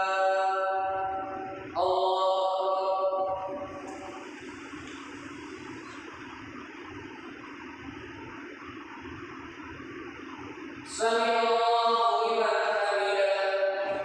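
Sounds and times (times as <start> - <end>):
chanted note: 0.0 - 4.7.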